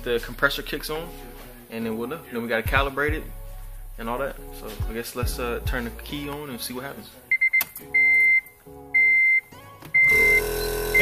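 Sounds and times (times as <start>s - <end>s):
high electronic beeps: 7.3s - 11.0s.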